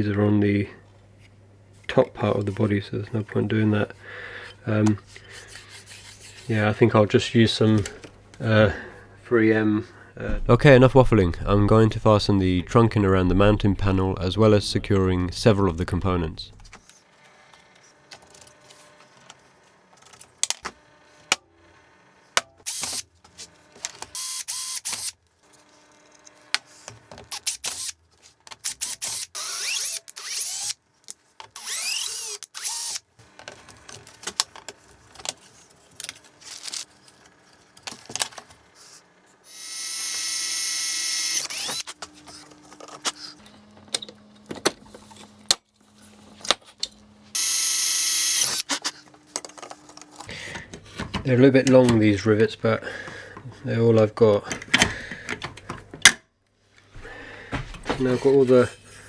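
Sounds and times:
cordless drill running: 22.7s - 23.0s, 24.2s - 25.2s, 28.7s - 30.8s, 31.6s - 33.1s, 39.5s - 41.9s, 47.3s - 48.6s.

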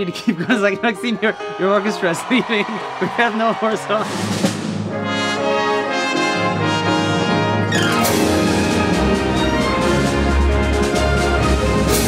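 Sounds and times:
orchestra playing sustained chords: 4.9s - 12.0s.

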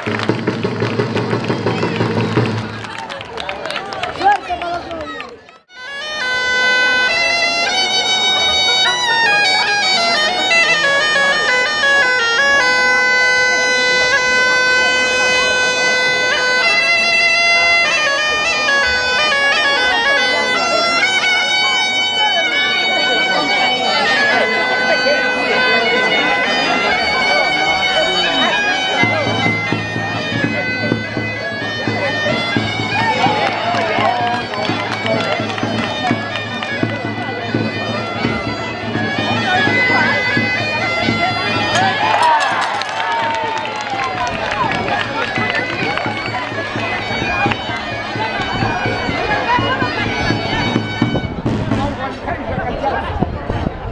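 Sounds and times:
drum accompanying: 0.0s - 3.0s, 28.6s - 53.7s
bagpipe folk dance tune: 0.0s - 3.4s, 4.1s - 52.9s.

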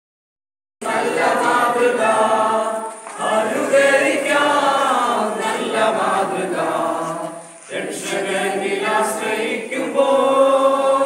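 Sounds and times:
children and women singing: 0.8s - 11.0s.

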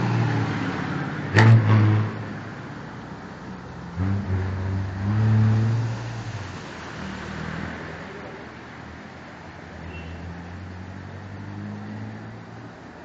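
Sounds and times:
vehicle road and wind noise: 0.0s - 13.0s.

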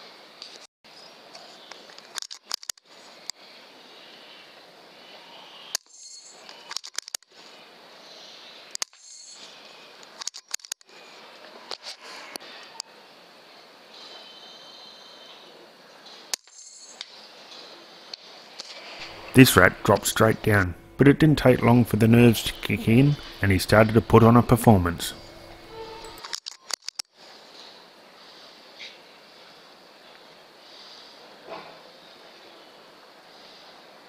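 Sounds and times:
microphone hiss: 17.2s - 26.2s.

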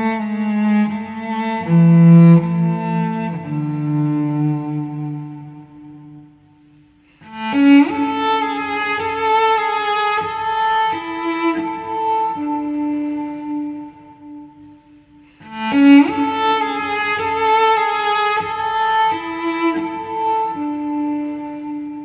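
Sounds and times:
bowed cello melody: 0.0s - 22.0s.

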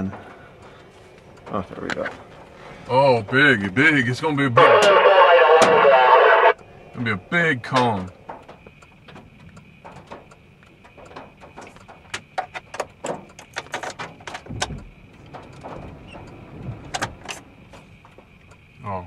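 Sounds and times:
low rumble: 4.6s - 9.1s
raindrops hitting car windshield: 7.1s - 19.0s.

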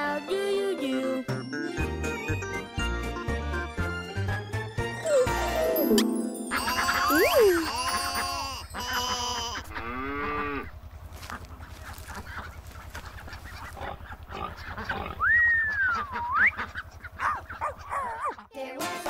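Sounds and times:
cartoon sheep calls: 6.6s - 10.7s.

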